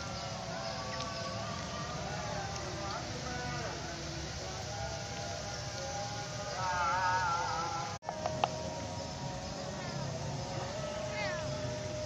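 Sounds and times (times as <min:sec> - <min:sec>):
distant person singing: 0:00.0 - 0:12.0.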